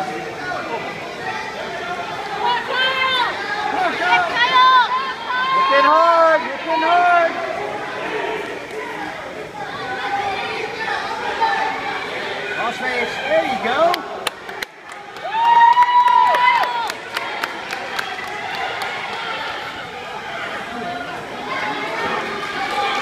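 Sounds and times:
people shouting: 2.0s - 13.9s.

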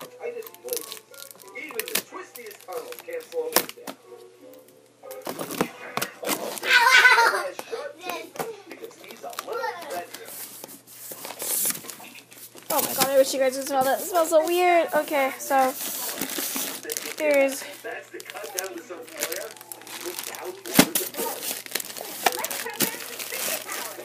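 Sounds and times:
cardboard box rustling and crinkling: 9.0s - 24.0s
child's voice: 9.5s - 10.0s.

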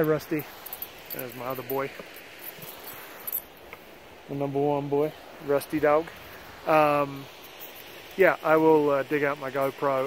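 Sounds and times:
faint rustles: 0.0s - 3.8s
outdoor background noise: 0.0s - 10.0s.

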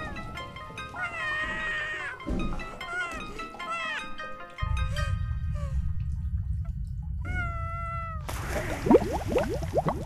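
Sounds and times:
low rumble: 5.3s - 10.0s
bubbling gurgles: 8.3s - 10.0s
splash into bathwater: 8.3s - 10.0s.

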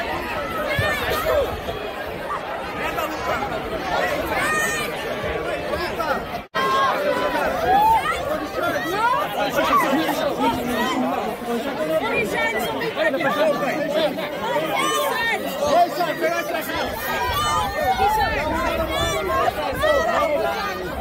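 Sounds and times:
crowd babble of voices: 0.0s - 21.0s.

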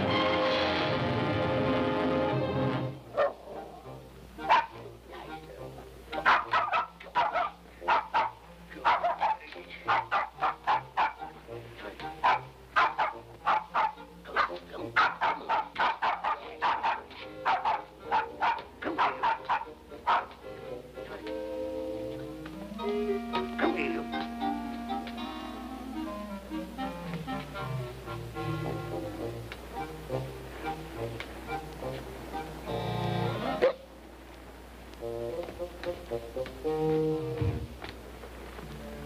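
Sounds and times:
small dog yapping: 4.5s - 4.7s, 6.2s - 11.2s, 12.2s - 20.4s, 33.6s - 33.8s.

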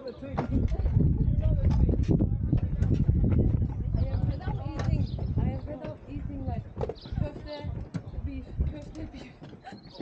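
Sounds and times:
people talking: 0.0s - 10.0s
footsteps on wooden boardwalk: 0.2s - 10.0s.

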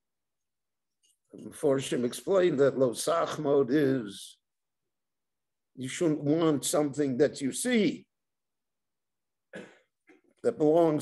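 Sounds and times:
elderly man coughing: 9.5s - 10.2s.

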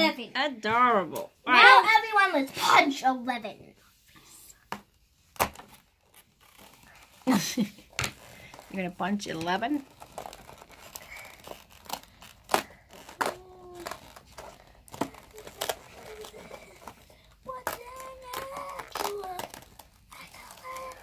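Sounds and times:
cardboard tearing: 5.3s - 21.0s
packaging crinkling: 5.4s - 21.0s.

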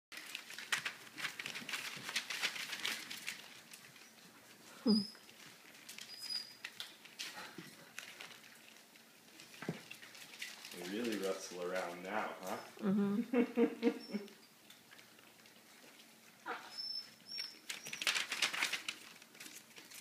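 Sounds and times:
paper rustling and crackling: 0.1s - 12.6s, 17.1s - 20.0s.

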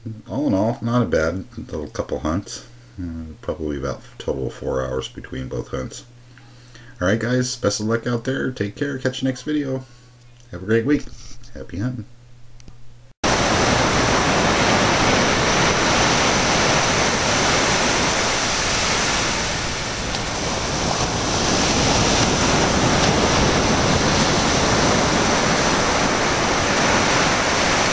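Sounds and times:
ocean waves breaking on beach: 13.2s - 27.9s.

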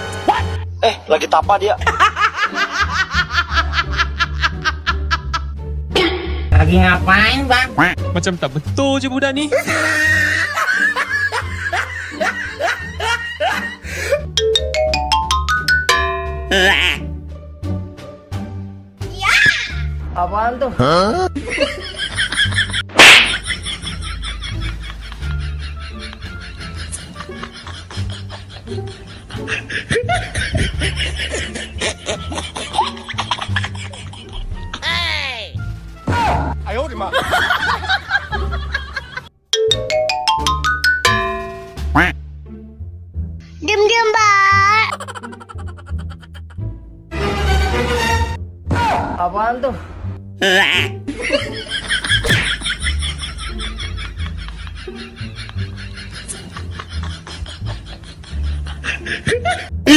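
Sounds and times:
person snickering and chuckling: 9.6s - 14.3s, 21.2s - 34.5s, 44.9s - 46.6s, 50.4s - 59.9s.

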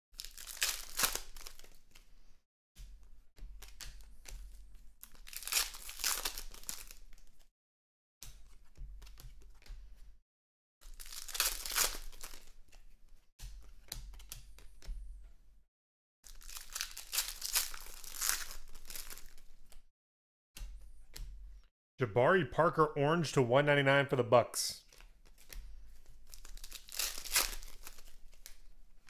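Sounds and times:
foil wrappers tearing and crinkling: 0.2s - 1.8s, 5.1s - 7.3s, 10.8s - 12.6s, 16.3s - 19.7s, 26.2s - 28.8s.

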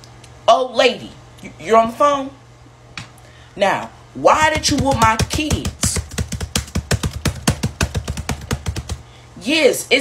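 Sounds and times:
low steady hum: 0.0s - 10.0s
fast typing on laptop keyboard: 4.4s - 9.0s.

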